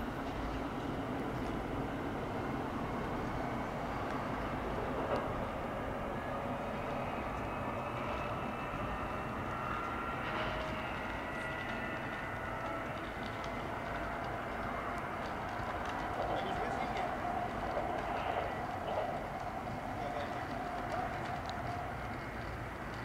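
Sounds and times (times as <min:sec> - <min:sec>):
train wheels rumbling on rails: 0:00.0 - 0:23.0.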